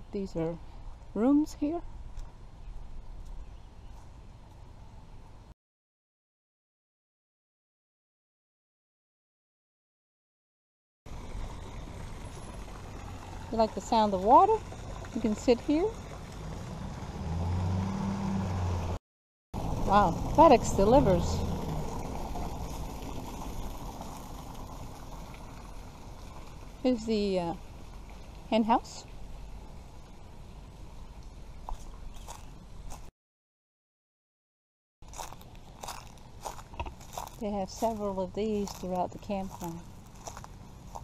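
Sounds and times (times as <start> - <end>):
truck engine humming: 11.1 - 19.0, 19.6 - 28.5
footsteps crunching on dry leaves: 31.6 - 33.1, 35.0 - 41.0.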